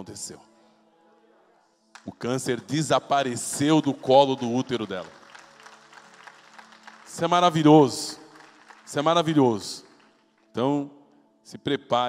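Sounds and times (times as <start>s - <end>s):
faint scattered applause: 3.4s - 10.6s.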